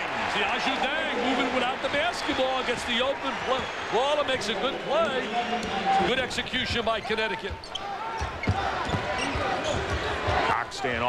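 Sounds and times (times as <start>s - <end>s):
arena crowd murmur: 0.0s - 7.0s, 7.8s - 11.0s.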